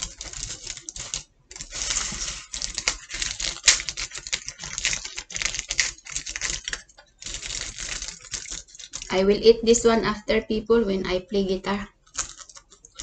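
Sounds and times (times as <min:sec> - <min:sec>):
aluminium foil crinkling: 0:00.0 - 0:09.1, 0:12.0 - 0:13.0
hands tearing pizza: 0:00.0 - 0:09.1, 0:12.1 - 0:13.0.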